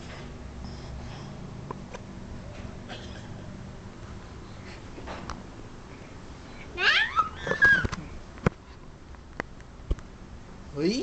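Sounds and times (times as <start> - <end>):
high-pitched cry: 6.8 - 7.9.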